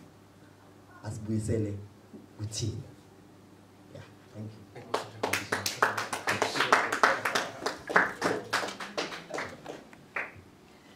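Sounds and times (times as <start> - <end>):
people clapping: 4.8 - 10.4.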